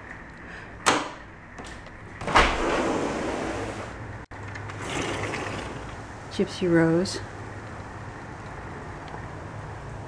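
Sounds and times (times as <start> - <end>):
sliding screen door rolling: 1.5 - 4.0.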